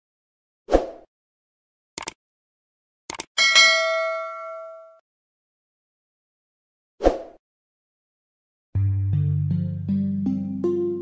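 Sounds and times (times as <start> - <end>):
short clicks: 2.0 - 2.2, 3.1 - 3.3
small bell ringing: 3.4 - 5.0.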